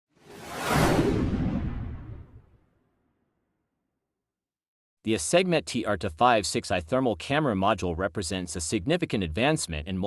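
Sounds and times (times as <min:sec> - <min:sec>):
whoosh sound effect: 0:00.1 - 0:02.6
low rumble: 0:00.3 - 0:02.6.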